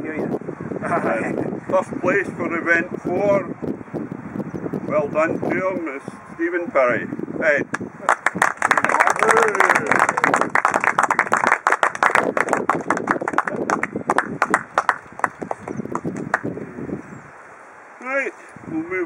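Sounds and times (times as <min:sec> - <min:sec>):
crowd applauding: 0:08.0 - 0:16.5.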